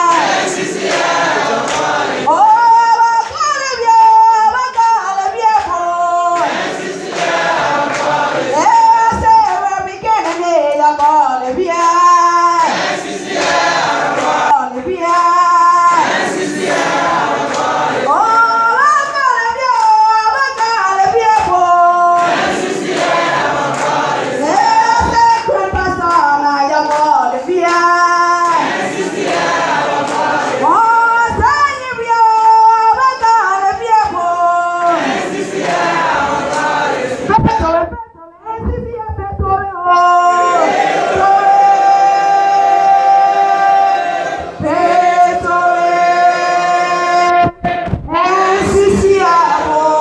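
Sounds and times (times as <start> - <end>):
woman singing into microphone: 0.0 - 0.3, 2.2 - 6.5, 8.5 - 12.7, 14.4 - 16.0, 18.0 - 22.3, 24.4 - 28.7, 30.5 - 35.0, 37.3 - 43.9, 44.6 - 50.0
congregation singing: 0.0 - 38.0, 39.8 - 50.0.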